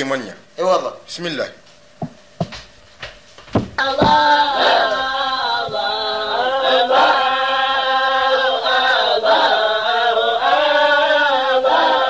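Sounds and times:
vocal chanting in held notes: 0:03.8 - 0:12.0.

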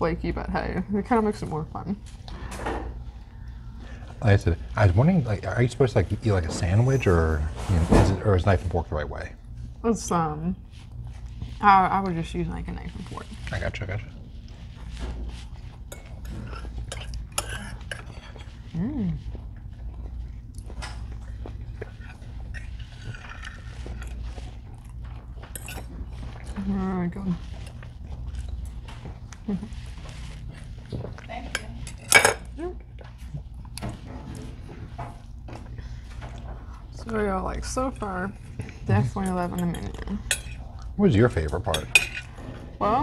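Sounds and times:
low steady hum: 0:00.0 - 0:43.0
chewing: 0:12.9 - 0:37.1, 0:38.3 - 0:42.6
knife and fork cutting on plate: 0:15.7 - 0:18.6, 0:25.4 - 0:26.6, 0:39.2 - 0:40.6, 0:41.7 - 0:42.4.

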